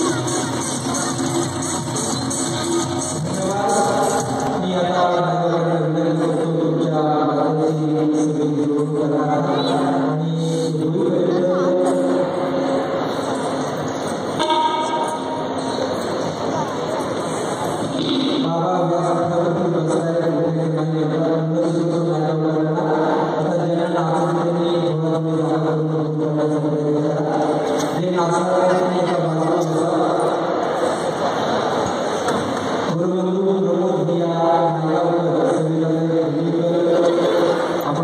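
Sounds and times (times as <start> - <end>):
steady held drone tone: 9.7 - 19.8.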